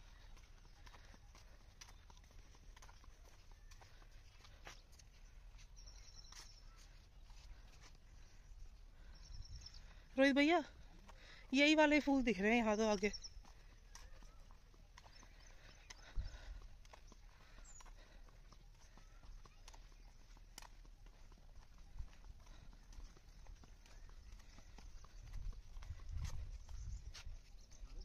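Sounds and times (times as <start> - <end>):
footsteps on paved path: 0.0 - 28.0.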